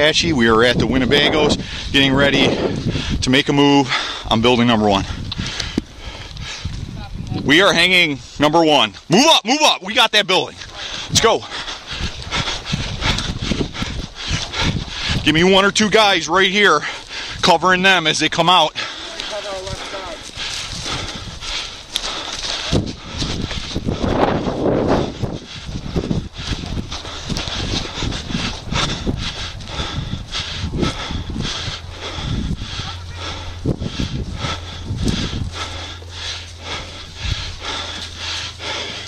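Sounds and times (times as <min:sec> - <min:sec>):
rustling through dry grass: 0:18.8 - 0:39.0
steady low hum: 0:19.8 - 0:39.0.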